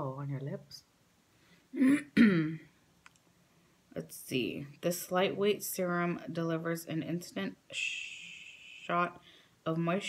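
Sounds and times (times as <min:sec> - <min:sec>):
woman clearing her throat: 0:01.8 - 0:02.7.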